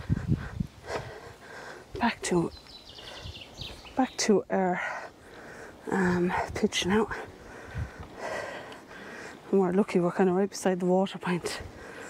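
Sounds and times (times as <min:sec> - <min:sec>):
footsteps on paved path: 0:00.0 - 0:12.0.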